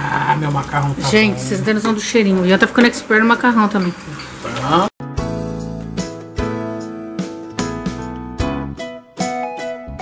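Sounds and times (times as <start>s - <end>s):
acoustic guitar music: 5.0s - 10.0s.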